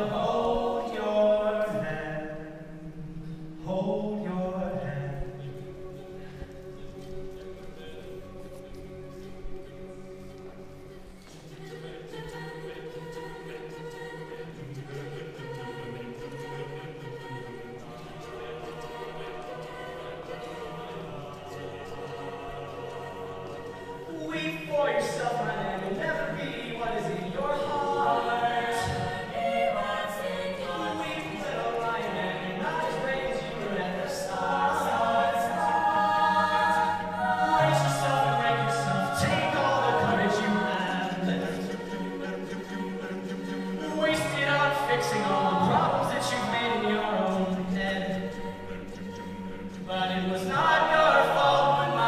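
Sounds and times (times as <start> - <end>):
vocal group singing in harmony: 0.0 - 52.0.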